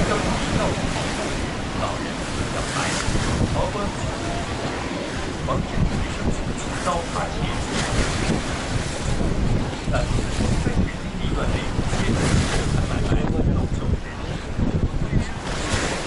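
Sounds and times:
water surging against a wall: 0.0 - 13.6
wind buffeting microphone: 0.0 - 16.0.

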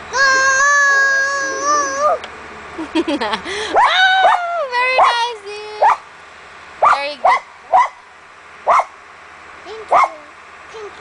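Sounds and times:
child whining: 0.1 - 2.3
dog barking: 5.8 - 6.0, 6.8 - 8.0, 8.7 - 8.9, 9.9 - 10.2.

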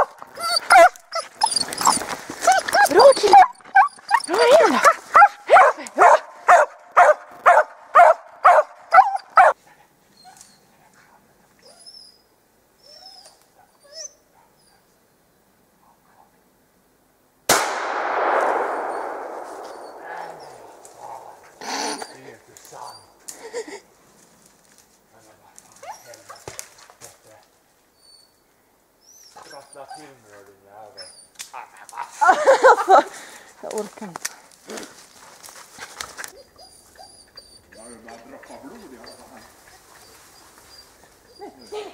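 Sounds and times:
dog barking: 0.0 - 1.3, 2.7 - 9.6, 14.4 - 14.6
dogs yelping and whining: 0.0 - 5.9, 8.0 - 10.7, 11.6 - 14.9, 21.4 - 23.2, 25.8 - 26.6, 29.0 - 31.7, 36.2 - 41.9.

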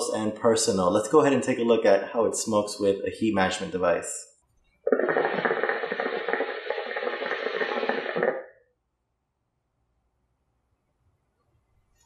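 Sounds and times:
hookah water bubbling: 4.9 - 8.6.

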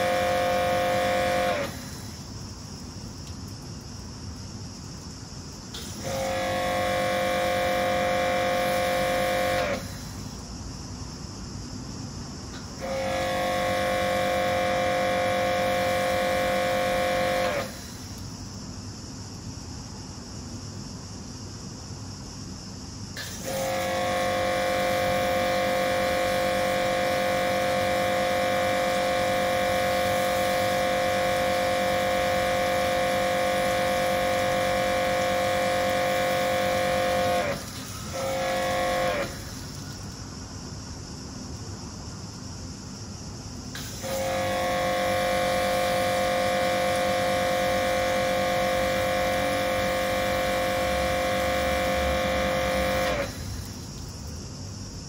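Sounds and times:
pressure washer whining: 0.0 - 2.4, 5.7 - 10.4, 12.5 - 18.3, 23.2 - 40.1, 43.7 - 54.0.

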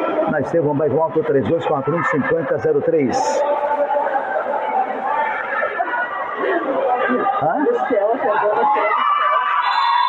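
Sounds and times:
voices talking and calling out: 0.0 - 9.7.

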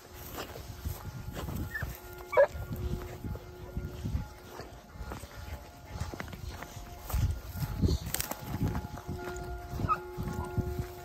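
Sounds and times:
hound baying: 1.4 - 5.0, 9.7 - 10.9.

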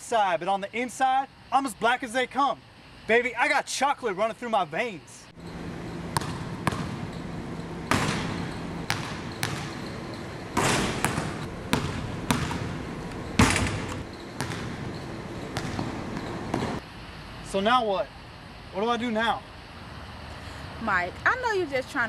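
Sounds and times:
basketball bouncing on gym floor: 5.5 - 16.8.

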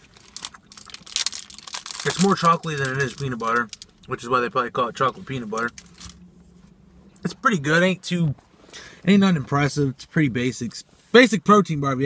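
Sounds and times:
plastic wrapper crinkling: 0.0 - 4.2, 5.1 - 6.2.

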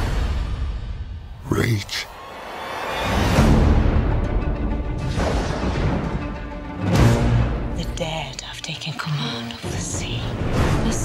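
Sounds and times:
woman whispering: 7.8 - 11.0.

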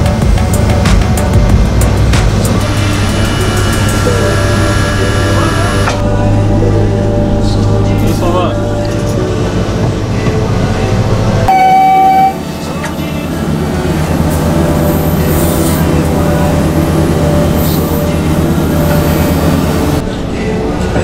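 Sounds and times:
heavy machinery running: 0.0 - 21.0
short high-pitched tone: 11.5 - 12.4.

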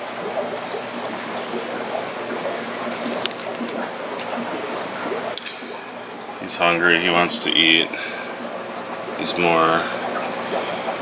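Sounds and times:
aquarium water trickling and bubbling: 0.0 - 11.0.

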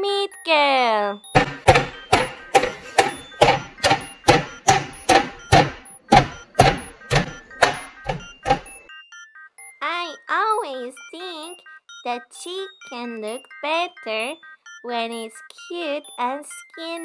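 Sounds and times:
meat mallet pounding chicken: 1.4 - 8.8.

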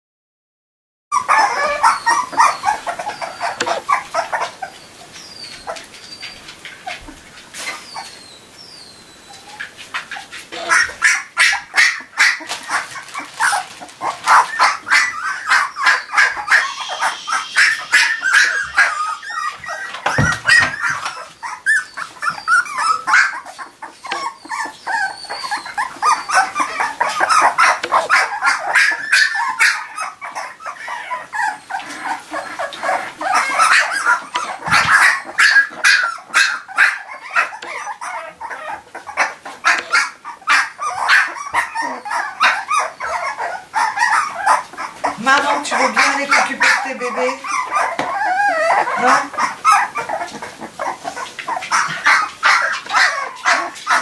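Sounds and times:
puppies yipping and squeaking: 1.1 - 54.0.

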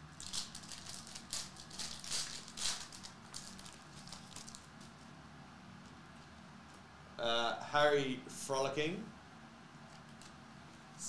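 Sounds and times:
foil wrapper crinkling and tearing: 0.1 - 5.0
cards rustling: 0.2 - 5.1.

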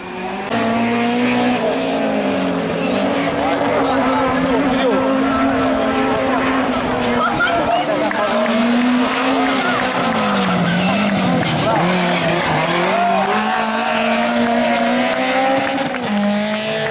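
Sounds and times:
rally car engine revving: 0.0 - 16.9.

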